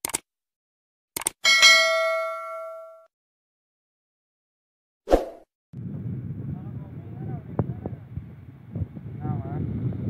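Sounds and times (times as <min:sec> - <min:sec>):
notification bell ding: 0:01.5 - 0:03.1.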